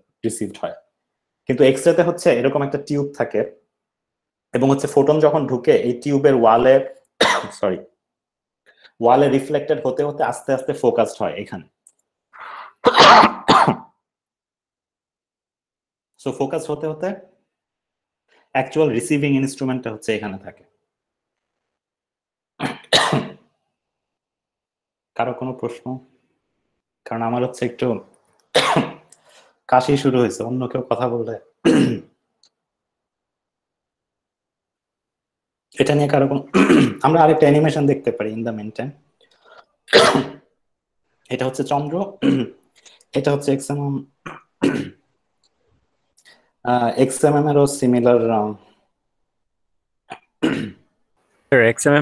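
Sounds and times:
man coughing: 7.2s - 7.6s, 12.4s - 13.9s, 22.6s - 23.4s, 28.6s - 29.0s, 31.6s - 32.1s, 36.5s - 37.0s, 39.9s - 40.4s, 42.2s - 42.6s, 44.2s - 45.0s, 50.1s - 50.8s
man sneezing: 12.4s - 13.9s, 39.9s - 40.4s.

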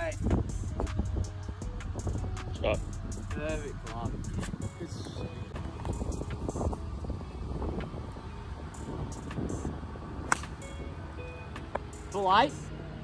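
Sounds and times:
steady low rumble: 0.0s - 11.2s
golf club striking ball: 10.2s - 10.8s.

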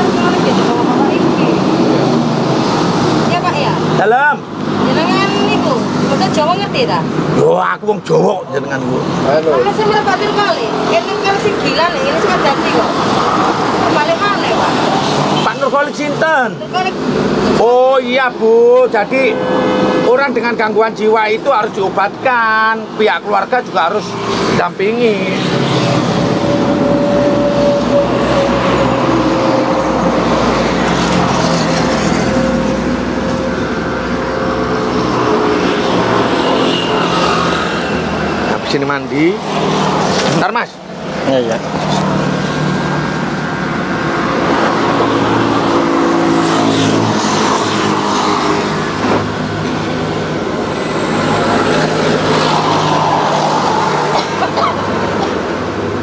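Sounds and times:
indistinct talking: 0.0s - 36.7s.

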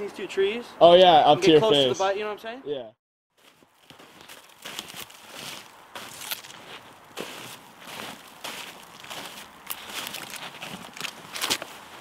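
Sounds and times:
boots walking in snow: 3.3s - 12.0s.

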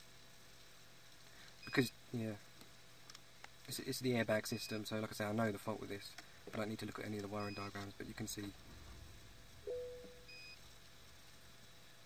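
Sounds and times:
faint low hum: 0.0s - 12.0s
faint high-pitched beep: 7.4s - 7.7s, 9.7s - 10.6s.

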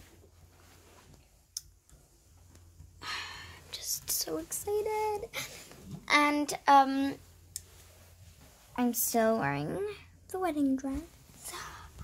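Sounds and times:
faint low room hum: 0.0s - 12.0s.

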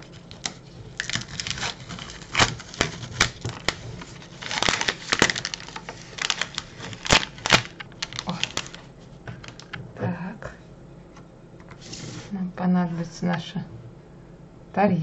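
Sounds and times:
wrapper crinkling and rustling: 0.0s - 9.8s.

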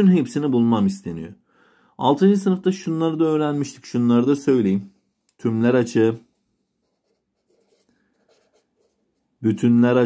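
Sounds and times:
marker pen writing on paper: 6.8s - 9.2s.

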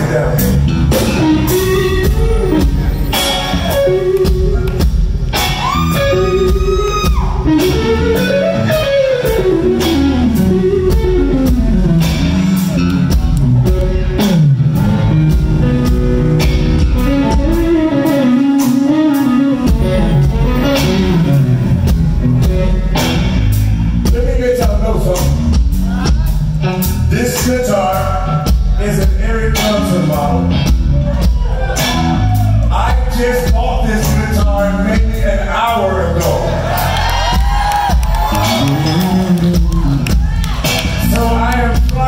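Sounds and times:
electric guitar lead: 0.0s - 32.8s, 36.2s - 42.0s
bass guitar: 0.0s - 42.0s
drum kit: 0.0s - 42.0s.

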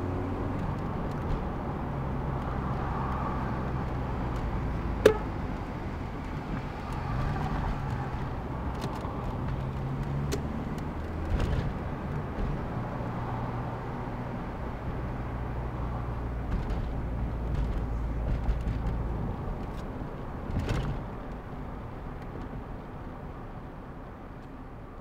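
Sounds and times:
car engine hum and road noise: 0.0s - 25.0s.

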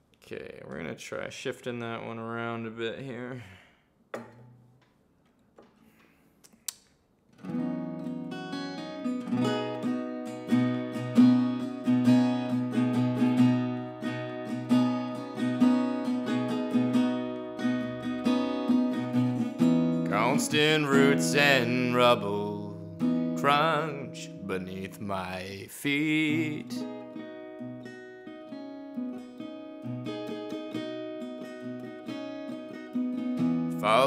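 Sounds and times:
acoustic guitar picking: 7.3s - 34.0s.

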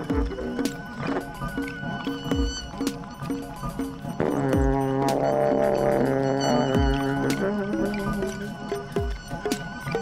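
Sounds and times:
kick drum thumps: 4.6s - 4.8s.

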